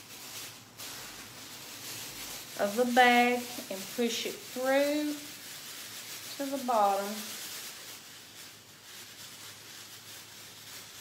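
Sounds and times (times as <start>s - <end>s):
plastic bags rustling and crinkling: 0.0s - 11.0s.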